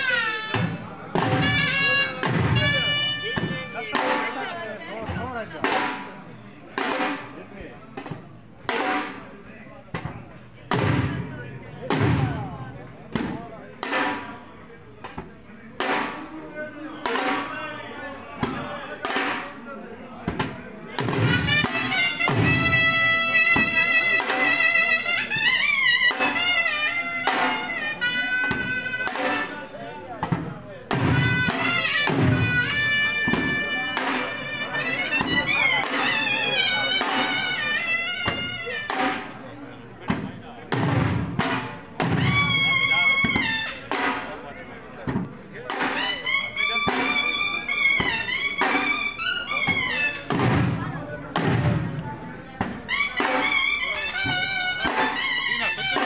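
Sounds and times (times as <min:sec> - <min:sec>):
wind instrument wavering melody: 0:00.0 - 0:04.9, 0:21.4 - 0:29.7, 0:31.2 - 0:39.0, 0:42.2 - 0:43.9, 0:45.9 - 0:50.3, 0:52.9 - 0:56.0
drums beating slow rhythm: 0:00.0 - 0:17.6, 0:18.4 - 0:56.0.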